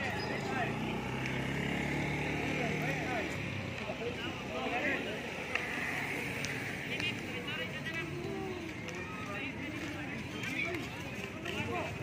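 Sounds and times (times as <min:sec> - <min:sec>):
motor scooter passing by: 0:00.0 - 0:09.2.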